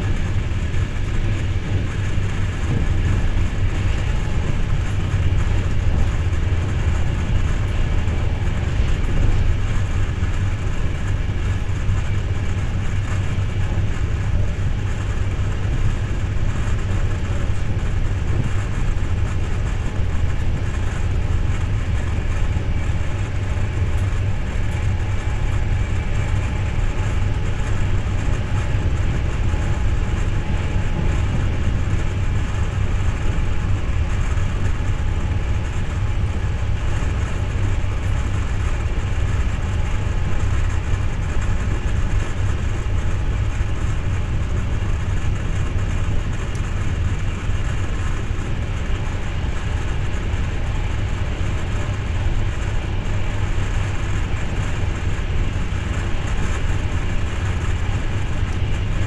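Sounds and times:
train rumble inside coach: 0.0 - 59.0.

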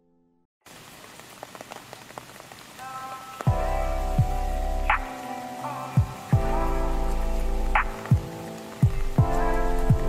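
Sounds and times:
rain hiss: 0.7 - 10.0.

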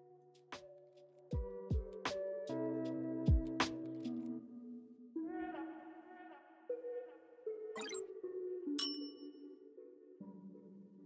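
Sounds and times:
soft synth background music: 0.0 - 11.0
bright bell ding: 8.8 - 9.4.

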